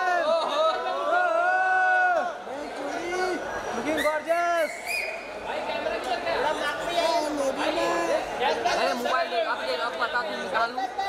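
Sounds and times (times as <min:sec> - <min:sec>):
crowd chattering and shouting: 0:00.0 - 0:11.0.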